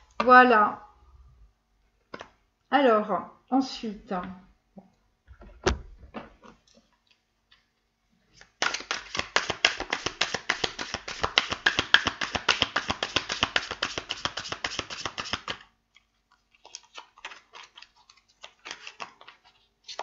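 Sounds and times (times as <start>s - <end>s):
cards shuffled by hand: 8.4s - 20.0s.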